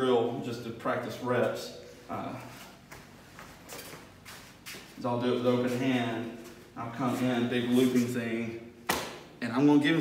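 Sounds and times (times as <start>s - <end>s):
footsteps on rubber mat: 2.4s - 8.0s.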